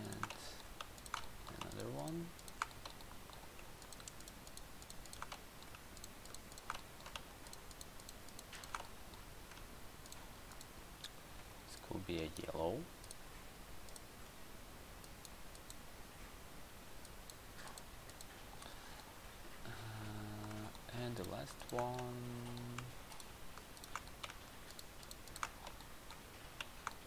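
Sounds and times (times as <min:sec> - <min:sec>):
keyboard clicks: 0:00.0 - 0:10.7, 0:15.0 - 0:15.8, 0:20.3 - 0:27.0
computer mouse clicks: 0:00.0 - 0:11.2, 0:13.0 - 0:13.2, 0:13.8 - 0:14.1, 0:15.0 - 0:15.8, 0:17.0 - 0:19.1, 0:20.0 - 0:27.0.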